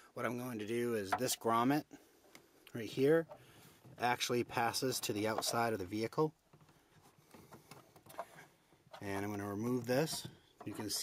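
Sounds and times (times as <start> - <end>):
faint clicks and rustles: 2.2 - 11.0.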